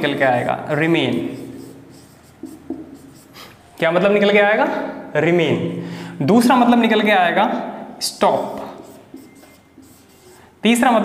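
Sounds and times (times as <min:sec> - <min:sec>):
marker pen writing on whiteboard: 0:00.0 - 0:03.7, 0:08.1 - 0:10.8
marker squeaks: 0:01.4 - 0:03.5, 0:08.2 - 0:10.4.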